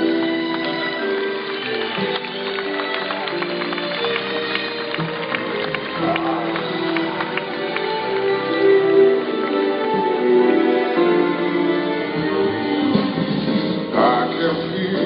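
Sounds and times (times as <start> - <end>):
live band playing slow song: 0.0 - 15.0.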